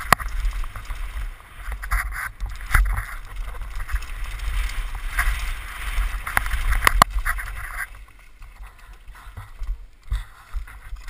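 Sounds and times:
bike rattling over bumps: 0:00.0 - 0:11.0
bike tyres on dirt: 0:00.0 - 0:11.0.

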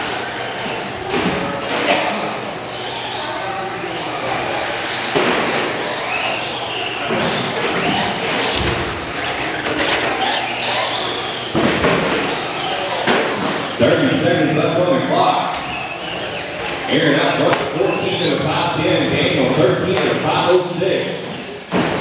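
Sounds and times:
electric toy trucks whining: 0:00.0 - 0:19.4.

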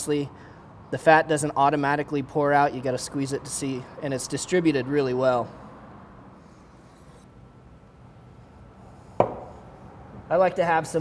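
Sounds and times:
knife knocking on cutting board: 0:09.2 - 0:09.5.

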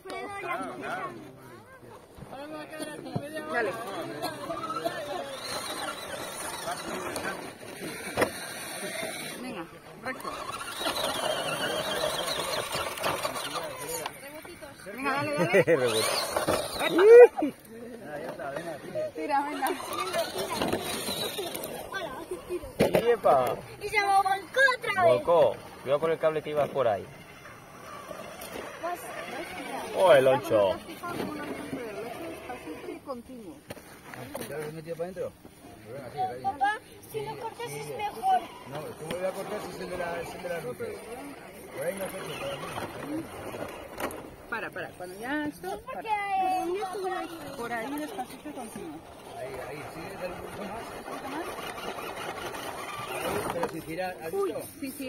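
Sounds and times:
people talking: 0:00.0 - 0:27.1, 0:28.8 - 0:34.7, 0:35.9 - 0:43.8, 0:44.5 - 0:55.0
electric motor whining: 0:03.4 - 0:17.5, 0:18.2 - 0:33.2, 0:37.2 - 0:54.8.

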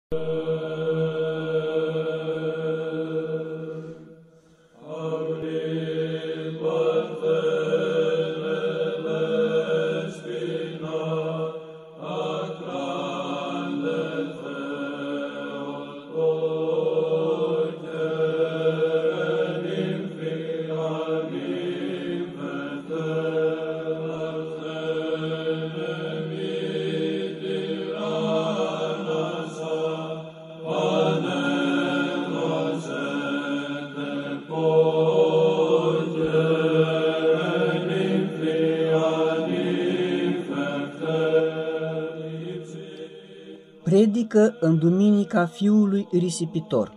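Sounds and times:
church chant: 0:00.1 - 0:46.9.

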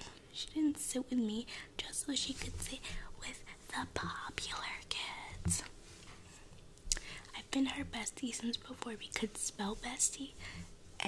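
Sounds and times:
girl whispering: 0:01.8 - 0:05.7.

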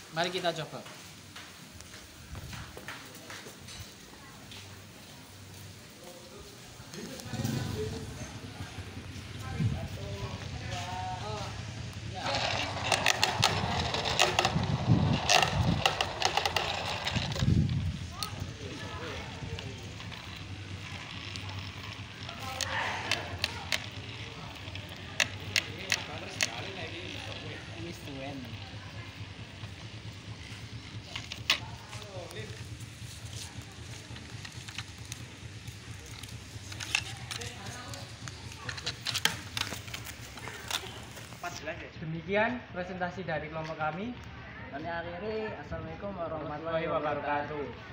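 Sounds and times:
faint distant voices: 0:00.0 - 0:47.9
robot boat propeller whirring: 0:07.2 - 0:41.5
plastic wheels knocking metal: 0:10.8 - 0:41.4.

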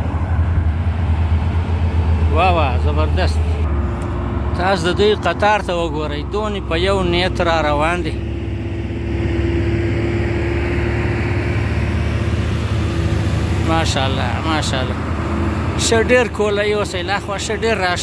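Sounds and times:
diesel truck engines rumbling: 0:00.0 - 0:18.0.

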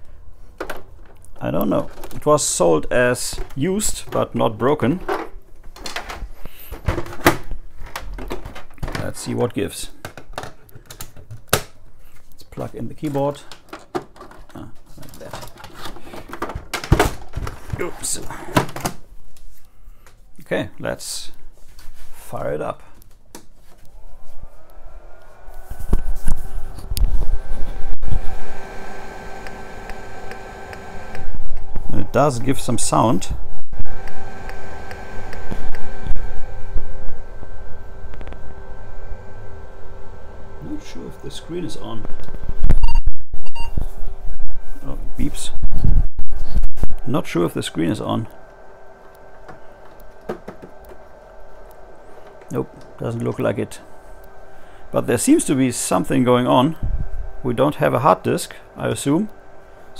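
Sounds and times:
steady hum: 0:15.4 - 0:59.9.

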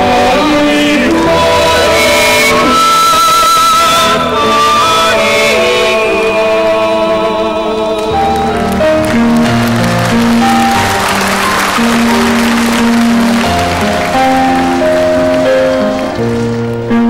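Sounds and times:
slow piano playing: 0:00.0 - 0:17.0
audience applause: 0:08.0 - 0:16.8.

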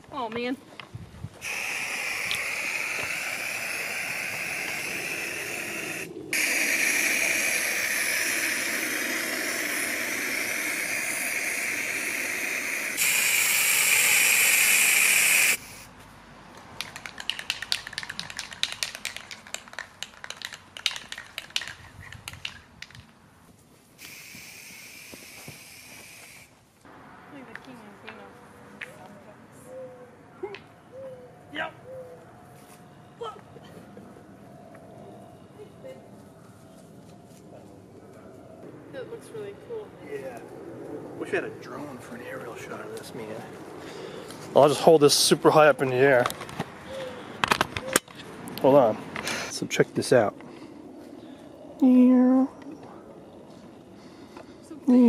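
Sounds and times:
aerosol paint spraying: 0:01.4 - 0:15.9, 0:24.0 - 0:26.5
small clicks and rustles: 0:16.6 - 0:23.6.

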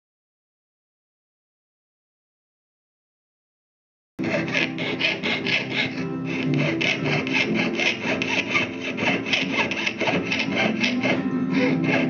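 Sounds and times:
saw rasping through thin metal: 0:04.2 - 0:12.0.

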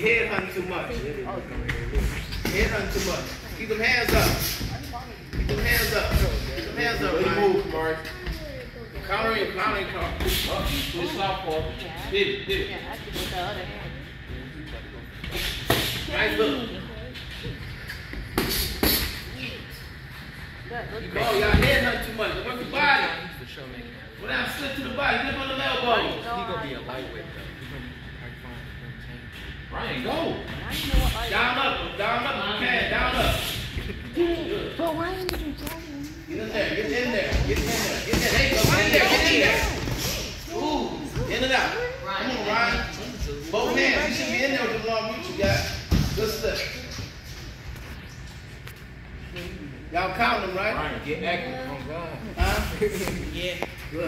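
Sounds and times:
faint voices talking: 0:00.0 - 0:54.0
room noise: 0:00.0 - 0:54.0.

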